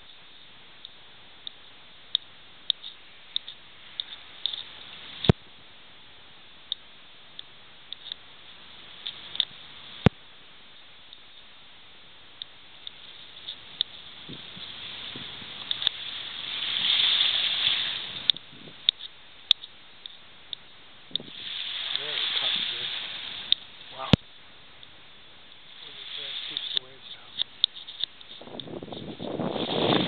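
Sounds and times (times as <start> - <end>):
waves washing on a beach: 0.0 - 30.0.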